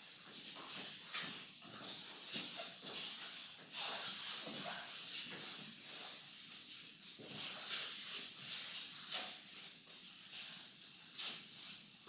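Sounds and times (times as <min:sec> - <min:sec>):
cloth wiping blackboard: 0:00.0 - 0:12.0.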